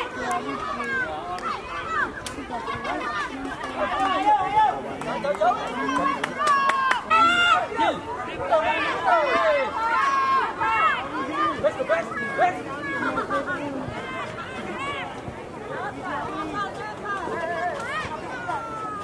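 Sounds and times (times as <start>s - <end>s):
loud shout: 0.0s - 15.1s, 16.5s - 19.0s
children shouting and calling: 0.0s - 19.0s.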